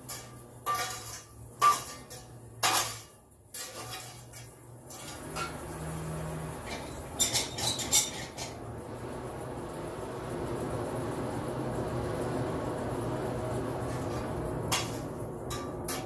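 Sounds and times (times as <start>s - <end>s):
forge blower whirring: 3.7s - 16.0s.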